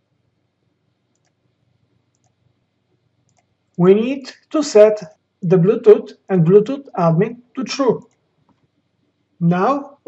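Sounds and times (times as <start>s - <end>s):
faint clicks: 1.1s - 1.5s, 2.1s - 3.8s, 8.0s - 8.7s
man's voice: 3.8s - 8.0s, 9.4s - 10.0s.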